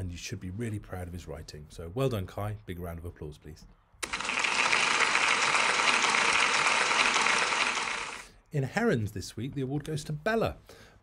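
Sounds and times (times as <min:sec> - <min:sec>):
crowd applauding: 0:04.0 - 0:08.2.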